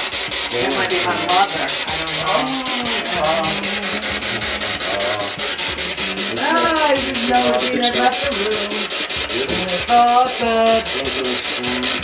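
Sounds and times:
chopped radio static: 0.0s - 12.0s.

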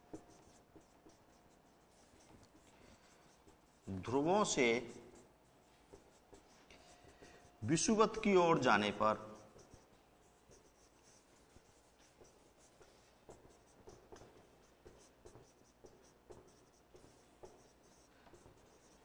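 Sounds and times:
marker writing on whiteboard: 0.0s - 19.0s.

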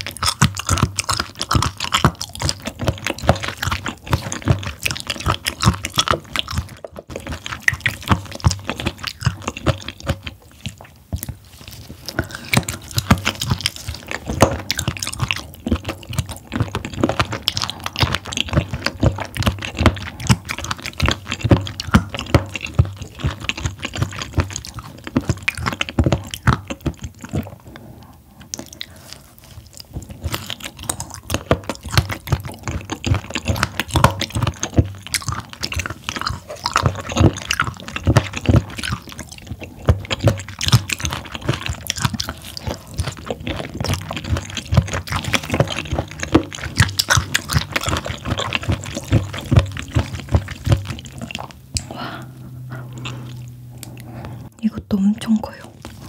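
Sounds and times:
wet chewing clicks and squelches: 0.0s - 56.0s.

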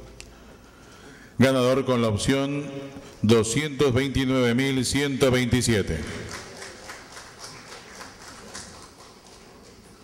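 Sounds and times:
audience clapping: 6.0s - 10.0s.

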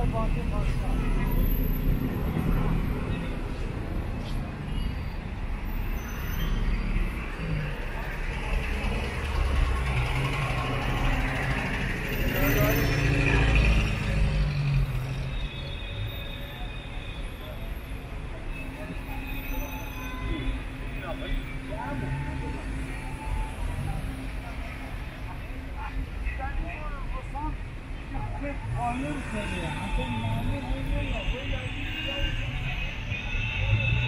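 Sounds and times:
people's voices: 0.0s - 4.9s, 6.2s - 15.4s, 16.0s - 34.0s
car engines running: 6.5s - 15.5s.

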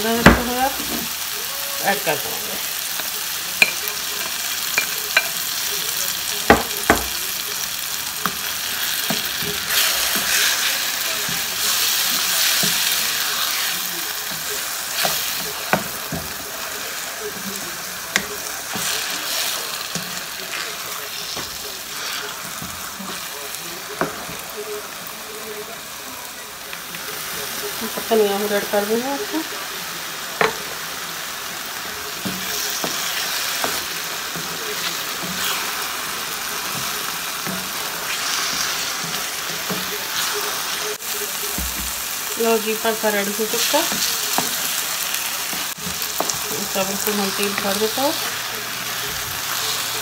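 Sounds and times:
food sizzling in a wok: 0.0s - 50.0s.

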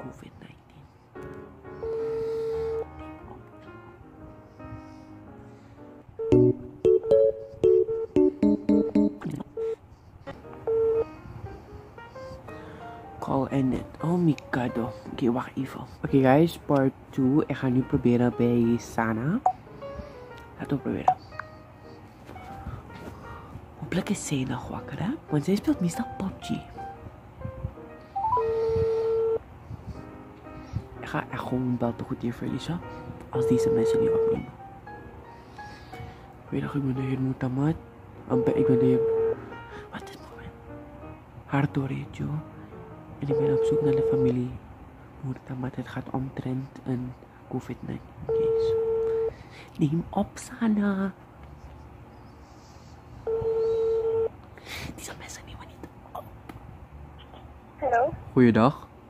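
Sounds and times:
rising phone tones: 1.8s - 3.0s, 6.2s - 9.8s, 10.6s - 11.1s, 28.2s - 29.4s, 33.4s - 34.5s, 38.3s - 39.5s, 43.2s - 44.4s, 48.3s - 49.4s, 53.3s - 54.4s
ringback beep: 6.2s - 9.8s, 33.4s - 34.5s, 38.3s - 39.4s, 43.2s - 44.3s, 53.3s - 54.3s.

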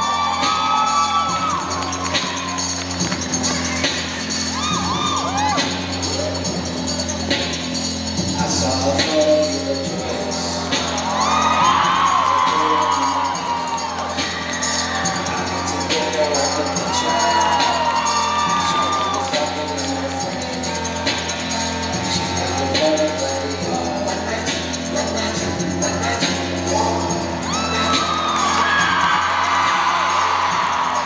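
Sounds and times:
crowd cheering and whooping: 0.0s - 6.2s, 10.6s - 20.8s, 27.2s - 31.0s
pop music over sound system: 0.0s - 31.0s.

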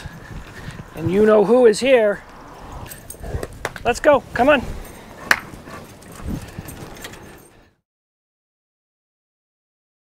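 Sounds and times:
faint outdoor background: 0.0s - 7.8s.

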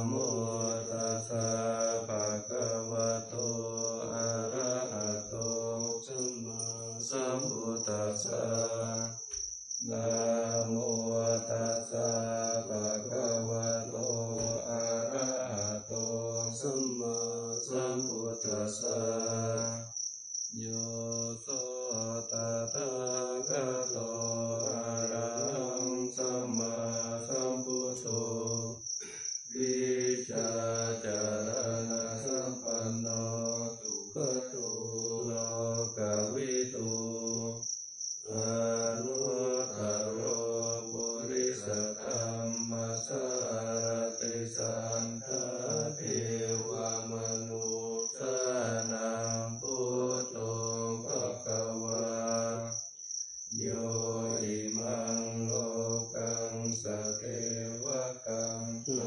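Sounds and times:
group chanting in unison: 0.0s - 52.9s, 53.5s - 59.0s.

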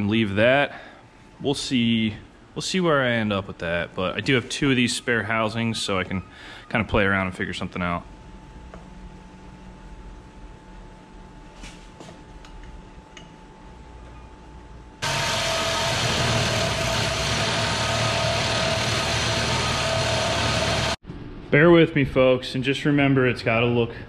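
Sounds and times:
steady shop hum: 0.0s - 24.0s
reciprocating saw cutting metal: 15.0s - 21.0s.

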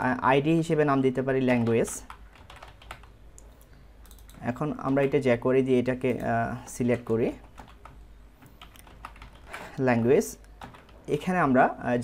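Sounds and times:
typing on computer keyboard: 1.5s - 3.2s, 4.0s - 5.2s, 7.0s - 8.0s, 8.6s - 9.6s, 10.4s - 11.0s.

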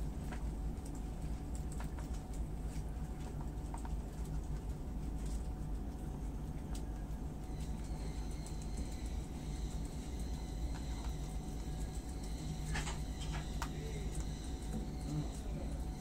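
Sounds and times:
animals chewing greens: 0.0s - 16.0s
steady low hum: 0.0s - 16.0s.

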